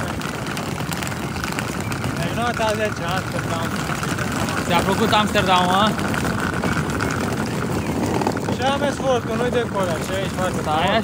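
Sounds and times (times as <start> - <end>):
suitcase wheels rolling on bricks: 0.0 - 11.0.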